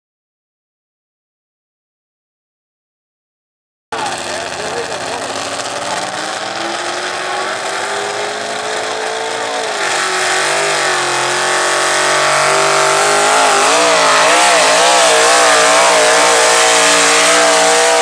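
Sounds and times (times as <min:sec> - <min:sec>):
truck engine at full throttle: 0:04.0 - 0:18.0.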